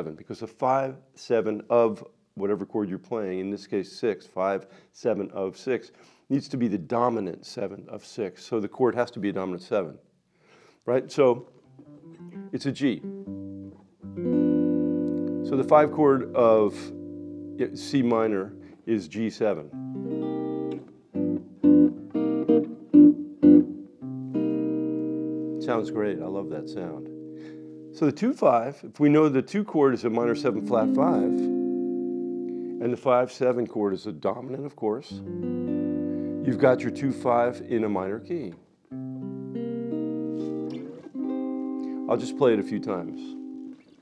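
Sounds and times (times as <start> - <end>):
electric guitar chord stabs: 12.2 - 18.8, 19.8 - 28.0, 30.1 - 33.0, 35.2 - 38.4, 39.0 - 43.8.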